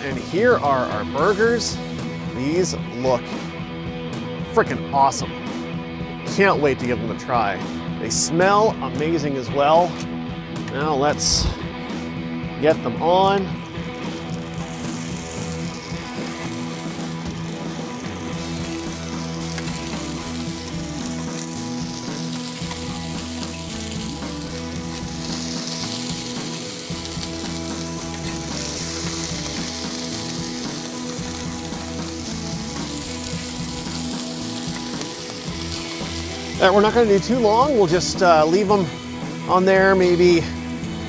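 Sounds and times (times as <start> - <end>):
burger patties sizzling on griddle: 0.0 - 2.3, 13.6 - 39.5.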